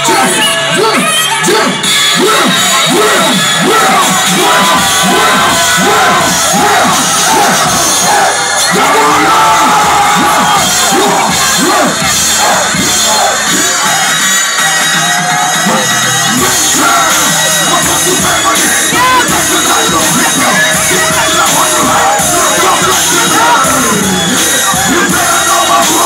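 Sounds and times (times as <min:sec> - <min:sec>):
crowd cheering and shouting: 0:00.0 - 0:26.0
live rap music: 0:00.0 - 0:26.0.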